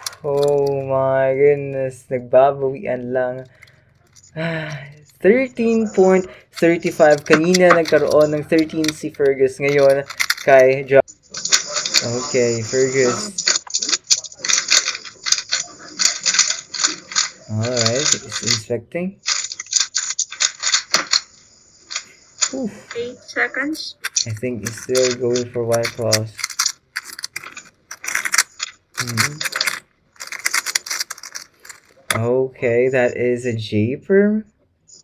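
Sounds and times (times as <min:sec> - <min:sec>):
plastic speed cube clicking: 0:06.6 - 0:10.8, 0:24.0 - 0:32.2.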